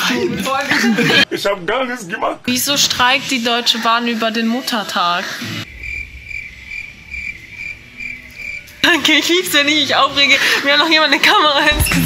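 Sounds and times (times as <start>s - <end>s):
cricket chirps: 5.6s - 9.1s.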